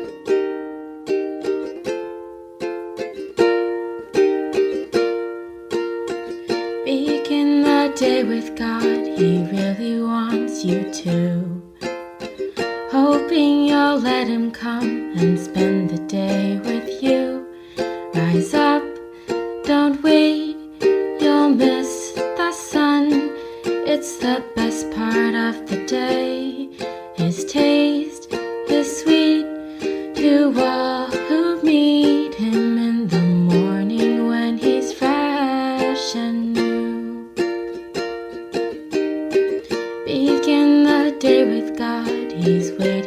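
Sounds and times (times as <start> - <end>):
plucked string instrument melody: 0.0 - 43.0.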